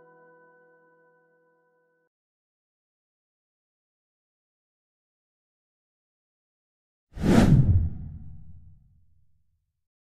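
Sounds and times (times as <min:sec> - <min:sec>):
whoosh with deep tail: 0:07.2 - 0:09.0.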